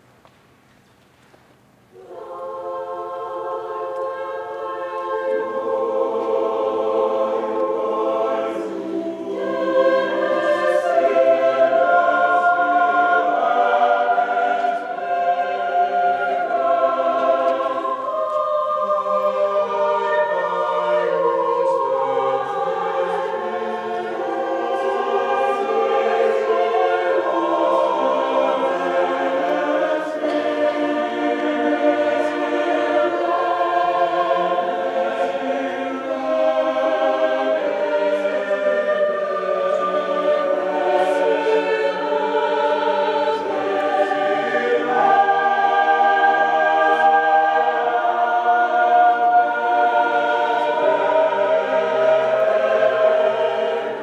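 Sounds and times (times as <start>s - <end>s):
mixed choir singing: 2.0s - 54.0s.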